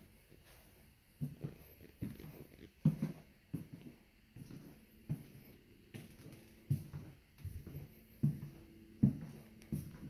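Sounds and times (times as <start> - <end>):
footsteps on floor: 0.3 - 10.0.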